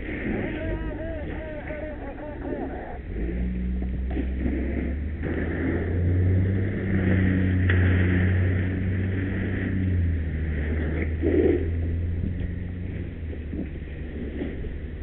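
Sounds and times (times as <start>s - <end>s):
fire engine running under load: 0.0s - 15.0s.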